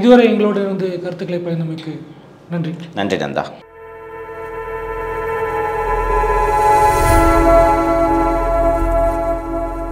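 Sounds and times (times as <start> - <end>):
sustained electronic chord: 3.6 - 9.9.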